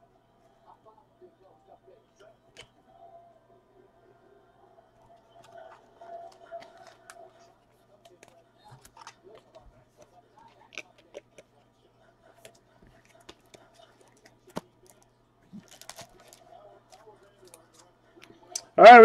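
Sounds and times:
cards clicking and plastic rustling: 5.3s - 11.5s, 12.4s - 17.9s.

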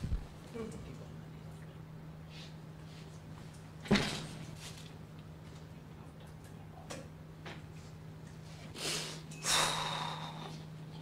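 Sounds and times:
person sniffing sharply: 8.8s - 10.5s.

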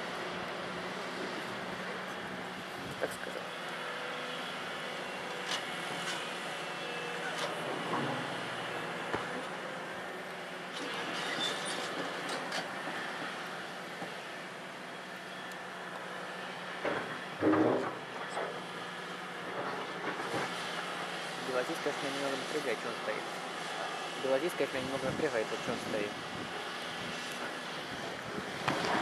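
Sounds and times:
excavator diesel engine: 0.0s - 29.0s
metallic clanks and squeals: 10.7s - 12.7s.

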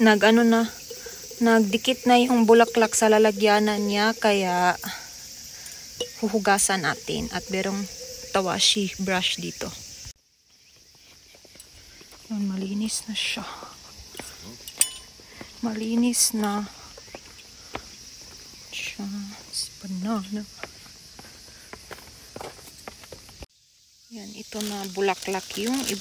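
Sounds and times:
insects chirring: 0.0s - 26.0s
footsteps on stone paving: 10.7s - 12.3s, 16.9s - 18.7s, 20.5s - 23.5s.

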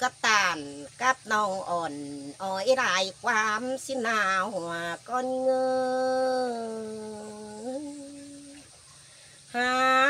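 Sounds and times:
woman singing unaccompanied: 0.0s - 8.8s, 9.4s - 10.0s.

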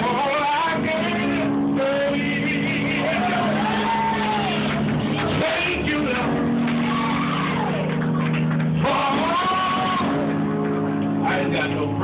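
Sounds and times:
man singing gospel: 0.0s - 4.3s, 5.3s - 6.6s, 8.8s - 10.4s
sustained accompaniment chord: 8.1s - 12.0s.

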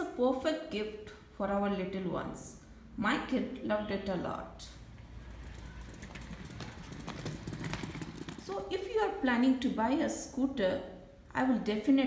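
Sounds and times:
scooter wheels rolling on concrete: 5.0s - 8.9s.

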